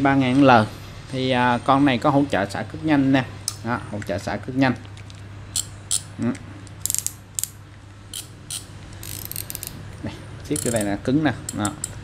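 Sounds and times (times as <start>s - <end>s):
fishing reel ratcheting clicks: 6.8s - 7.5s, 8.1s - 9.8s, 10.5s - 12.0s.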